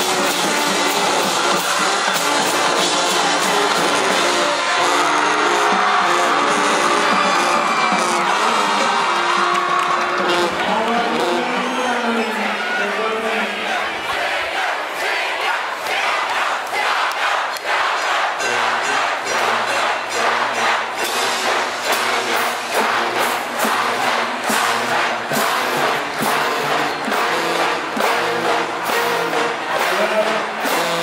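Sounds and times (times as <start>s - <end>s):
drums keeping a steady beat: 0.0s - 11.8s, 17.6s - 31.0s
brass holding notes: 0.0s - 12.8s, 18.4s - 31.0s
crowd yelling and cheering: 0.0s - 31.0s.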